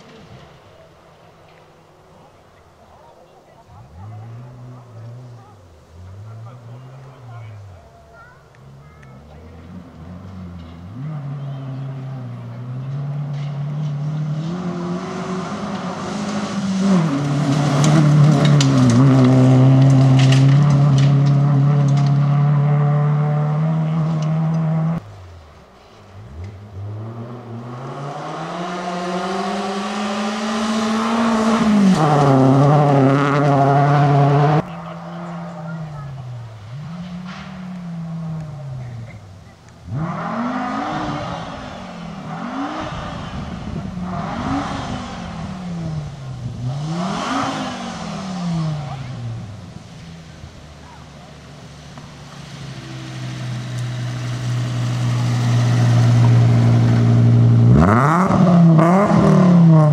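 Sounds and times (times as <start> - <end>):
rally car engine revving: 3.6 - 59.9.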